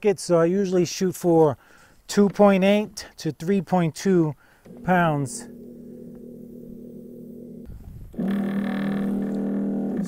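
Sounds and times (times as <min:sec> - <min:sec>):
electric pump humming: 0:04.6 - 0:10.0.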